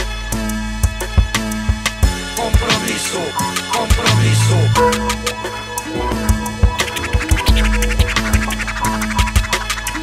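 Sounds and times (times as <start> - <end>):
heavy bass: 0.0 - 10.0
drum beat: 1.2 - 5.5, 6.1 - 10.0
vinyl record scratching: 2.4 - 10.0.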